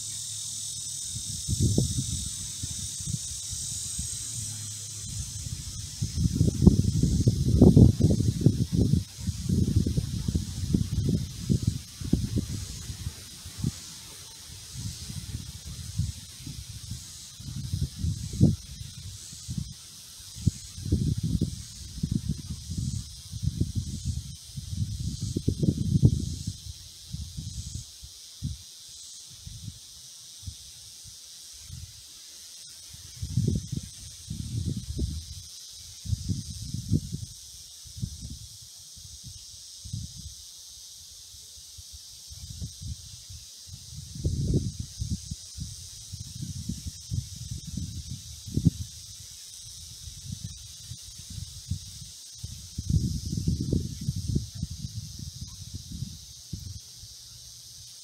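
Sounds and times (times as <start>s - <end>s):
insects hissing: 0.0s - 58.0s
wind buffeting microphone: 1.0s - 27.8s, 33.1s - 35.4s, 36.0s - 38.5s, 42.4s - 56.8s.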